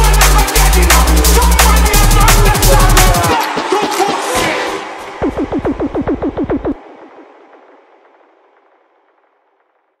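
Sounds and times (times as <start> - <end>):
echoing tail: 5.0 - 10.0
stuttering electronic hits over bass: 5.2 - 10.0.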